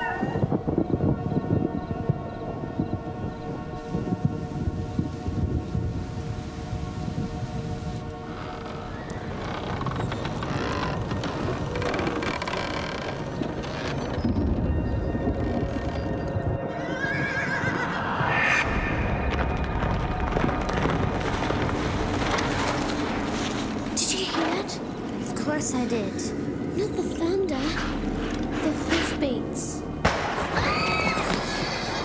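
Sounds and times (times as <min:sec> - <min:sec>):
background music: 0:00.0 - 0:32.0
horse whinnying: 0:16.7 - 0:18.3, 0:30.5 - 0:32.0.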